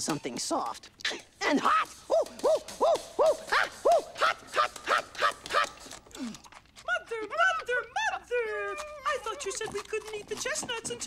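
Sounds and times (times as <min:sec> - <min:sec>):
puppet rat yelping in pain: 0:01.6 - 0:06.3, 0:06.9 - 0:09.8.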